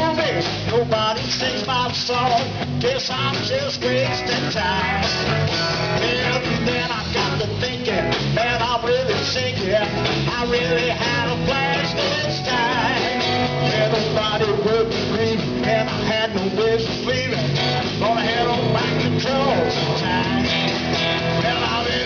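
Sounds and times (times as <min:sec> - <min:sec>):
country-rock band playing: 0:00.0 - 0:22.0
electric guitar lead with bent notes: 0:00.0 - 0:22.0.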